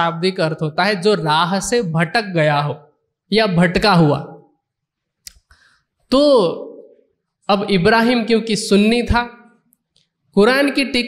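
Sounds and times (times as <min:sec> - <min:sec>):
man speaking: 0:00.0 - 0:04.4, 0:06.1 - 0:09.5.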